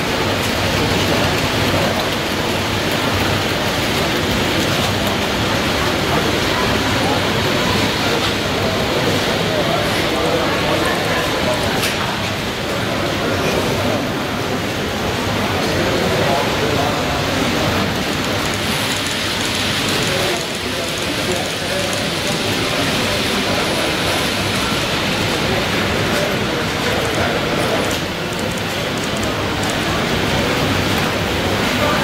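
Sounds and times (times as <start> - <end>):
babble of indistinct voices: 0.0 - 32.0.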